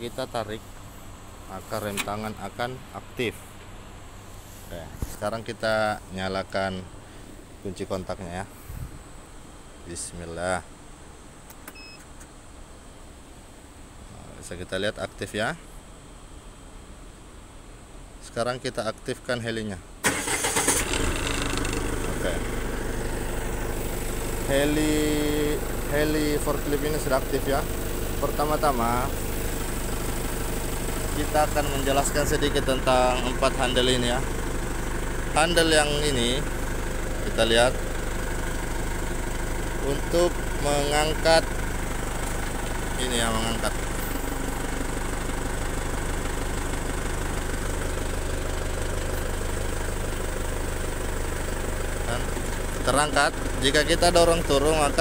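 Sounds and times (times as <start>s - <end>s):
forklift engine idling: 0.0s - 8.1s, 20.0s - 55.0s.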